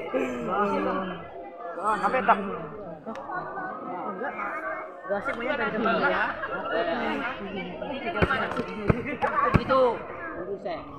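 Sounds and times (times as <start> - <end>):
students chattering: 0.0 - 10.9.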